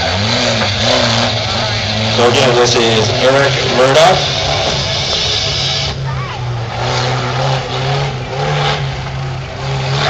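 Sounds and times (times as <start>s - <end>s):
off-road vehicle engine revving: 0.0s - 10.0s.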